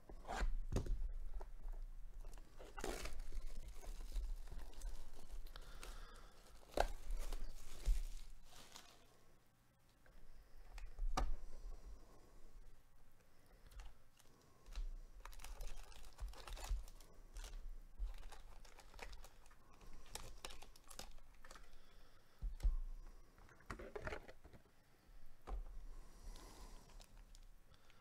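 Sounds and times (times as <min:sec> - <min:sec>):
cardboard rustling: 0:00.6 - 0:09.1
foil wrappers crinkling: 0:02.2 - 0:09.2, 0:13.7 - 0:21.9.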